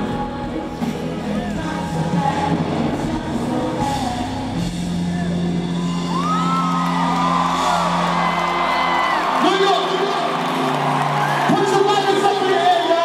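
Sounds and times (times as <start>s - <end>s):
concert music over a pa: 0.0s - 13.0s
crowd cheering and whooping: 5.3s - 13.0s.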